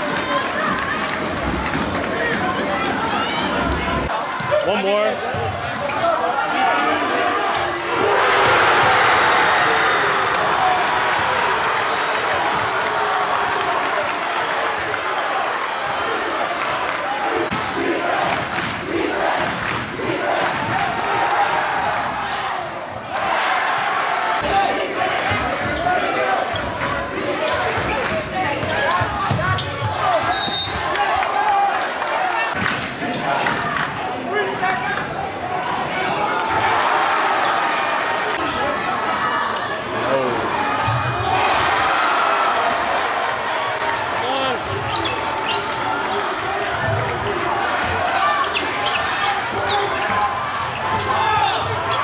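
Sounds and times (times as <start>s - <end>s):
crowd chatter: 0.0s - 52.0s.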